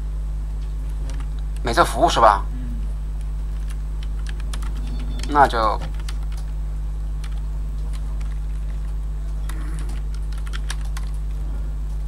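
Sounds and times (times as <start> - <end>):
low electrical hum: 0.0 - 12.0
computer keyboard typing: 1.0 - 1.4, 3.2 - 6.6, 7.2 - 11.4.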